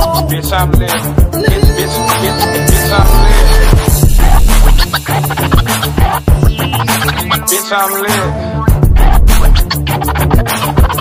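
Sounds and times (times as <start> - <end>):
turntable scratching: 0.0 - 8.2, 8.8 - 11.0
hip hop beat: 0.0 - 11.0.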